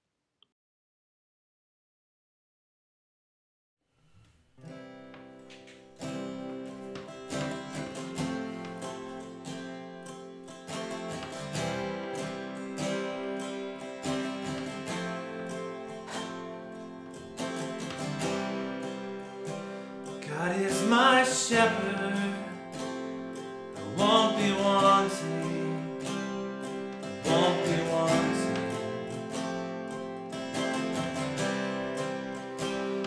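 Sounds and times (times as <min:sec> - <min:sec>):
acoustic guitars playing: 0:04.3 - 0:33.0
man singing: 0:20.2 - 0:23.0, 0:23.8 - 0:29.4.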